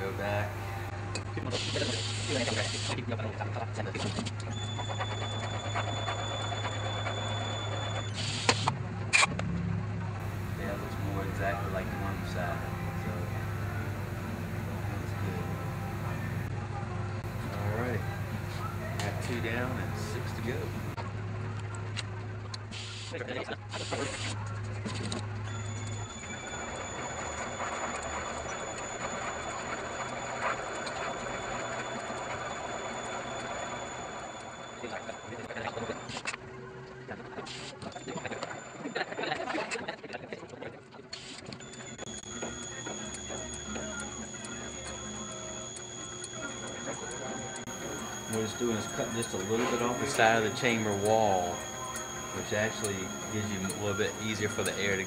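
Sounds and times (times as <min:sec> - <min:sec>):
machine low hum: 0:00.0 - 0:01.1, 0:10.2 - 0:16.6, 0:17.2 - 0:21.0, 0:41.7 - 0:55.0
cutter high whine: 0:00.0 - 0:03.0, 0:10.2 - 0:16.6, 0:17.2 - 0:21.0, 0:41.5 - 0:55.0.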